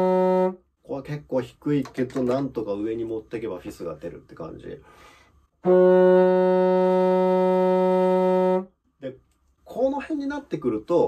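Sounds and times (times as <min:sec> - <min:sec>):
contrabassoon sustained note: 0:00.0 - 0:00.6, 0:05.6 - 0:08.7.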